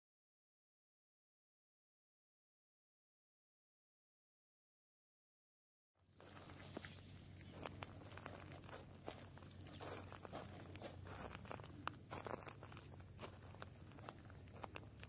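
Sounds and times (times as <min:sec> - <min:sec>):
footsteps on gravel: 0:06.2 - 0:15.0.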